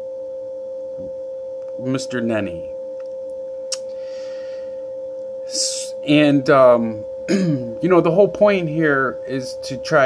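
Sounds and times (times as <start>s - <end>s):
electronic tone: 0.0s - 10.0s.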